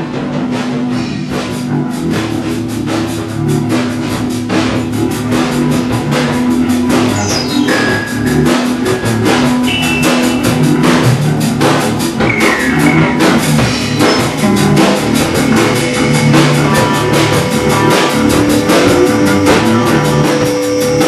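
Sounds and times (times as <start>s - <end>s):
punk rock band playing: 0.0s - 21.0s
falling high synth tones: 5.7s - 21.0s.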